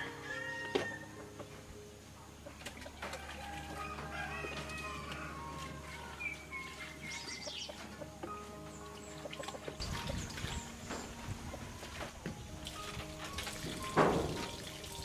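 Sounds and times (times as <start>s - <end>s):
rooster crowing: 0.0s - 1.2s, 3.0s - 5.8s
soft background music: 0.0s - 15.0s
chickens clucking: 0.7s - 12.4s
water sloshing in basin: 2.5s - 8.1s, 8.8s - 15.0s.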